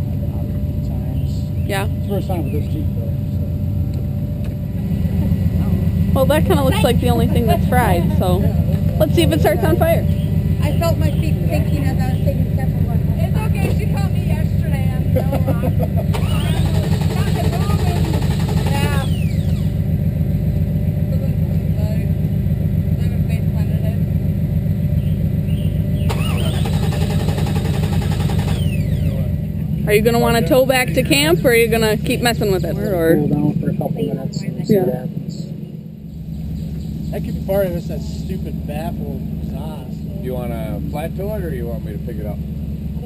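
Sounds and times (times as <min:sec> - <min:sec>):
car engine cranking on starter: 0:16.0 - 0:19.9, 0:25.5 - 0:29.3.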